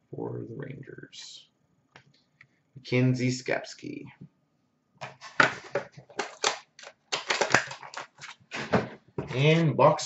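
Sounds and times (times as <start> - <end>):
cardboard packaging crackling: 5.0 - 8.6.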